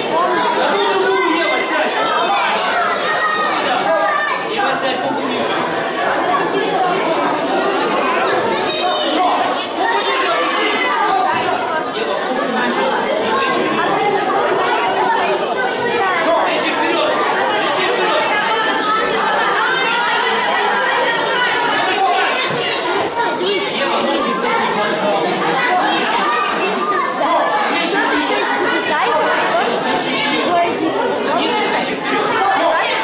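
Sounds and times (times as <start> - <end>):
crowd chattering in echoing hall: 0.0 - 33.0.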